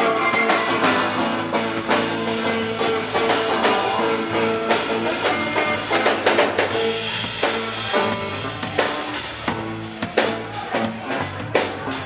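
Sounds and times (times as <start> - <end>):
drum kit steady beat: 0.0 - 12.0
electric guitar: 0.0 - 12.0.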